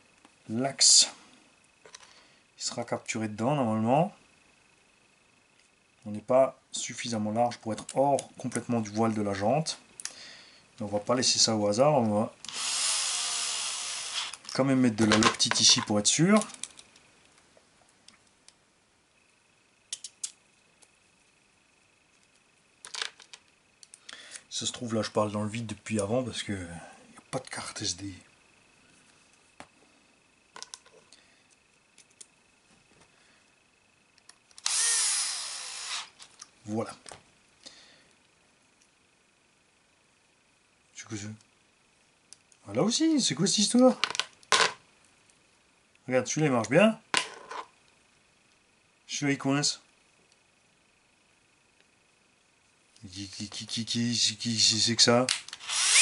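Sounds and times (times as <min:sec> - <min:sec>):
axle whirring in bearings: 0:12.4 - 0:14.5, 0:34.6 - 0:36.3, 0:55.5 - 0:56.0
small plastic and metal parts clicking: 0:16.4 - 0:17.1.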